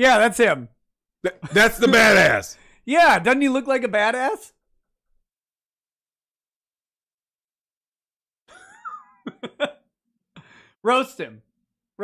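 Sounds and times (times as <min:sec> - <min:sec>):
man laughing: 0:08.5 - 0:09.9.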